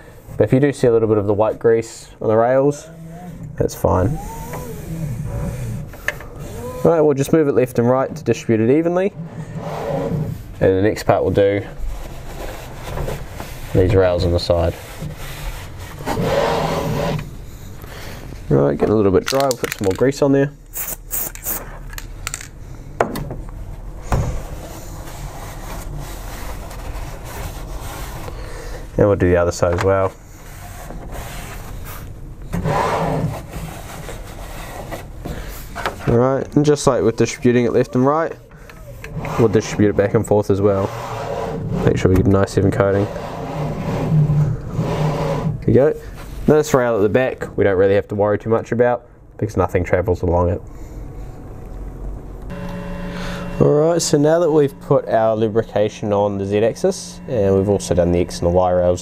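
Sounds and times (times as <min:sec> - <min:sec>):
carriage rubbing along rails: 0:02.7 - 0:07.4.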